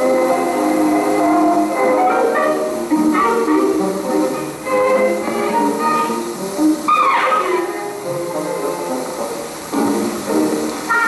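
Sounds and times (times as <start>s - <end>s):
light steady hiss: 0.0s - 11.0s
old film soundtrack music: 0.0s - 11.0s.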